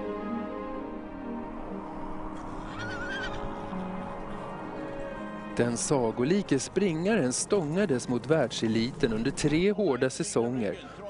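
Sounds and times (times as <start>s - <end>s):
background music: 0.0s - 11.0s
horse whinnying: 2.6s - 3.8s.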